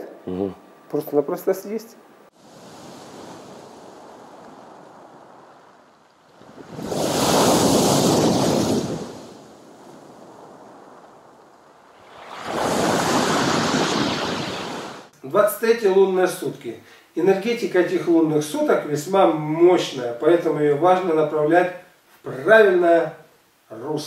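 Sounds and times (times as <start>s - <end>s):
large waves crashing: 2.4s - 15.1s
surf on pebble beach: 2.4s - 15.1s.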